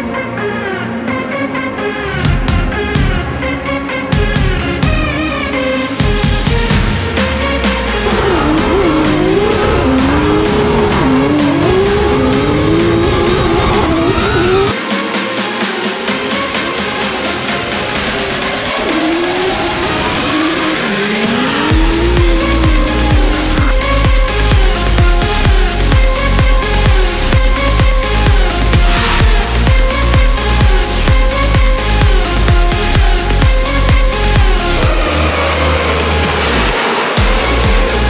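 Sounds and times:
car engines revving: 4.6 - 38.0
electronic dance music bass thumps: 5.9 - 38.0
tyres squealing: 8.0 - 14.8.

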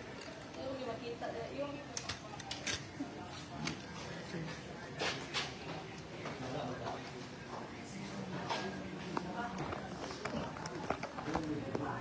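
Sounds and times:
background voices chattering: 0.0 - 12.0.

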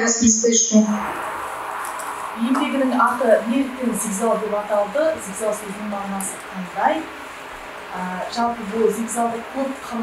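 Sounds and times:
woman speaking: 0.0 - 1.3, 2.2 - 7.2, 7.9 - 10.0.

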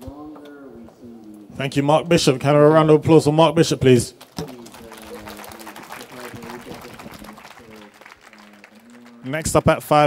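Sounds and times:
audience applauding: 4.2 - 10.0.

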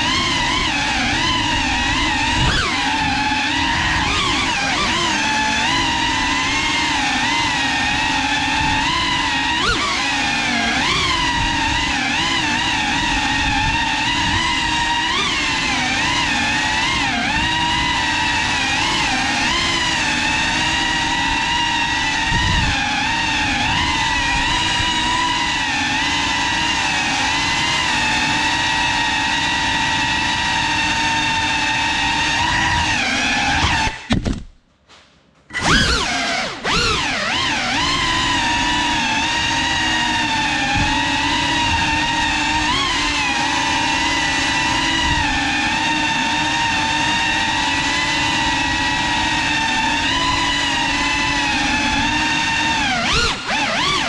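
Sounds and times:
drone propellers whining: 0.0 - 34.2, 35.5 - 54.0.

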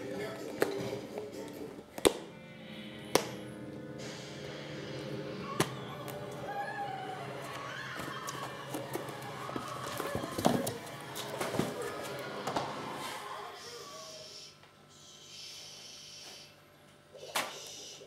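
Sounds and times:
background music: 0.0 - 13.6.

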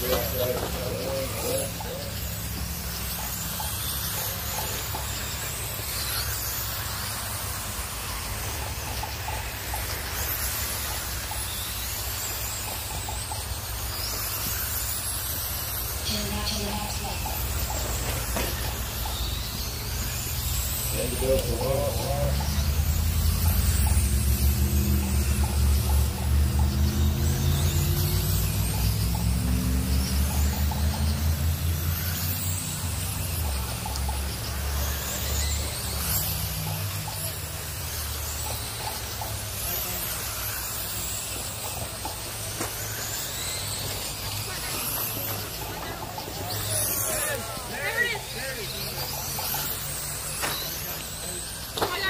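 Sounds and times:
radio-controlled cars racing: 0.0 - 52.0.

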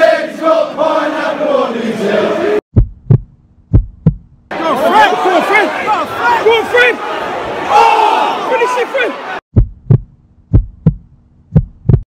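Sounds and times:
football crowd shouting: 0.0 - 2.6, 4.5 - 9.4
heartbeat thumps: 2.7 - 4.5, 9.5 - 12.0.

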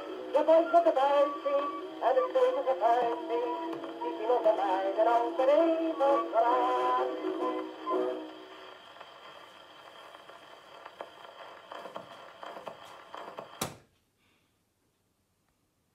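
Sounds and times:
song on gramophone record: 0.0 - 13.7
record needle hiss and clicks: 0.0 - 13.9
sharp knock: 13.6 - 13.8.

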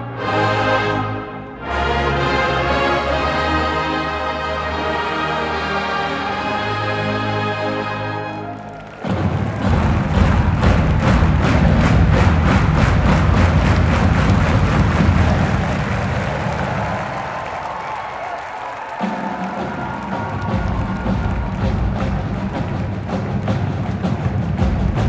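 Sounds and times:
marching band playing: 0.0 - 25.0.

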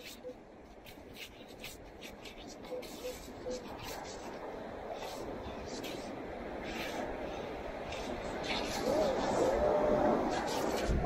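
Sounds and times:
background rush: 0.0 - 11.0.

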